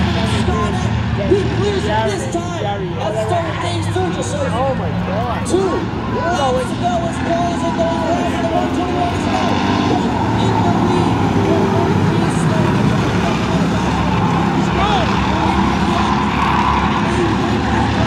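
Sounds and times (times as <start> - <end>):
race car engines droning: 0.0 - 18.0.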